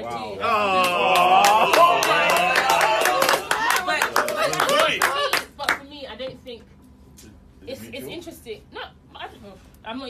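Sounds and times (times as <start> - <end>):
excited voices: 0.4 - 5.5
group clapping: 0.6 - 5.9.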